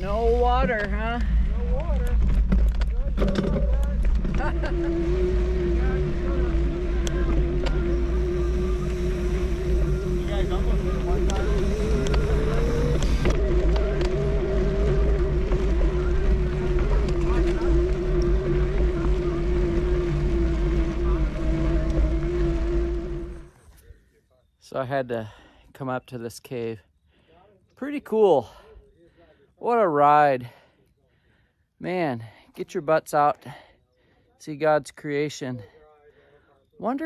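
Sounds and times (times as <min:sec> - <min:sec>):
electric bike motor whining: 0:00.0 - 0:23.8.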